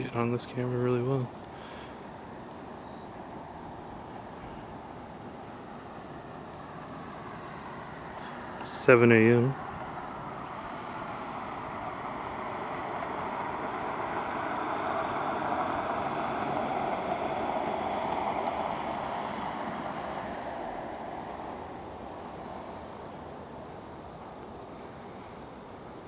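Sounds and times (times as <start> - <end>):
car driving past on snow: 5.6 - 25.4.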